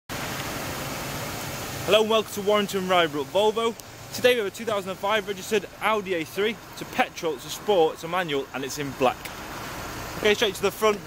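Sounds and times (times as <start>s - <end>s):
outdoor background hiss: 0.1s - 11.0s
man speaking: 1.9s - 9.3s, 10.2s - 11.0s.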